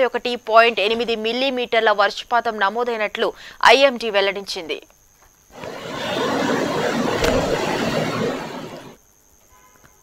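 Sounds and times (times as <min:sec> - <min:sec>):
floodwater rushing: 0:05.6 - 0:09.0.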